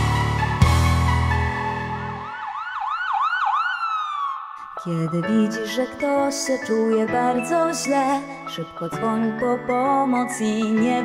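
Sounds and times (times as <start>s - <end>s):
backing music: 0.0s - 2.3s
ambulance siren wailing: 0.0s - 4.8s.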